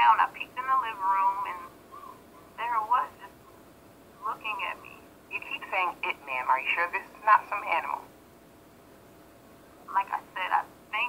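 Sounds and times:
woman speaking: 0.0s - 1.7s, 2.6s - 3.3s, 4.2s - 8.1s, 9.9s - 11.0s
faint steady hiss: 0.0s - 11.0s.

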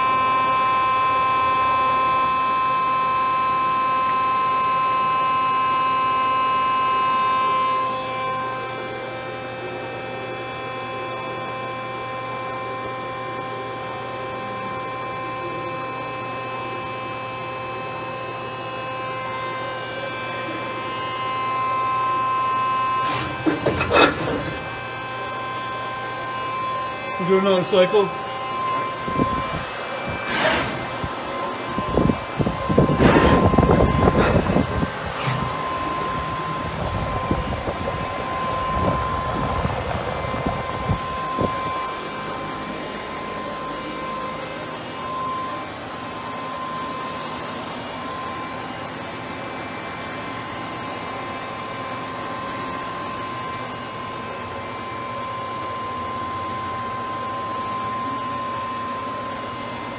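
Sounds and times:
machine humming with thin whine: 0.0s - 59.9s
machine clunks and whirring: 22.6s - 27.1s, 28.2s - 45.6s.

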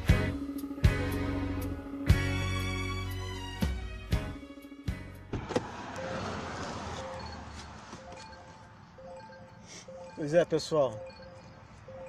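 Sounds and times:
highway traffic noise: 5.1s - 12.0s.

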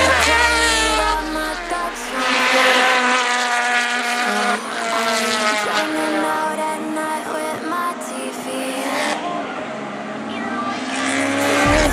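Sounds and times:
motorcycle engine at high revs: 0.0s - 5.9s, 10.7s - 11.9s.

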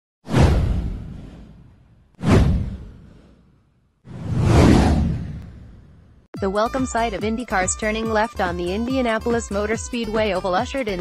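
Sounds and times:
whoosh sound effects: 0.3s - 6.2s.

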